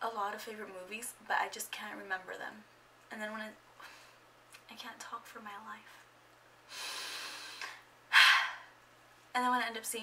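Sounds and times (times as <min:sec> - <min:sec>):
woman breathing: 0:06.6 - 0:08.8.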